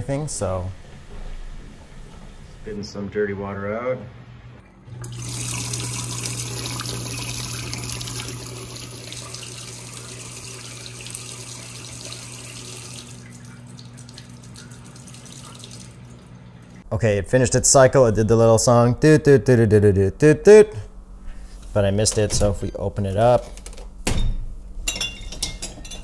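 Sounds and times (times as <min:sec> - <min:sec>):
steady low hum: 0:00.0 - 0:26.0
water gushing into steel sink: 0:05.0 - 0:16.8.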